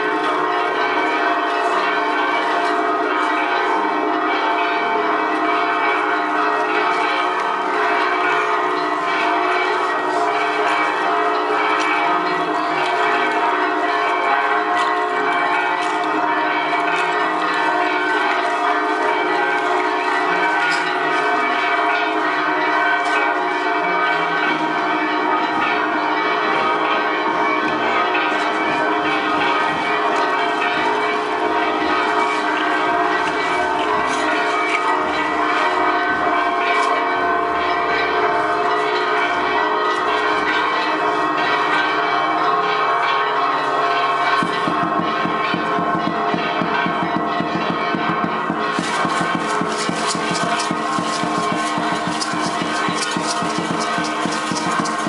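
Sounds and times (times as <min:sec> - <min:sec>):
church bells ringing: 0:00.0 - 0:55.0.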